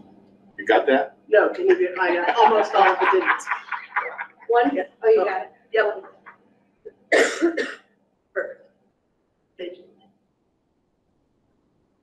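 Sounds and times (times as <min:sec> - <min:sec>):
person coughing: 0:07.1 - 0:07.8.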